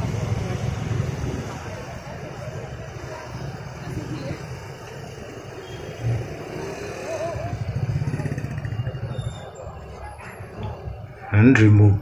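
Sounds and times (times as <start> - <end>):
cars moving: 0.0 - 12.0
motorcycle and scooter engines: 0.0 - 12.0
murmur of crowd: 0.0 - 12.0.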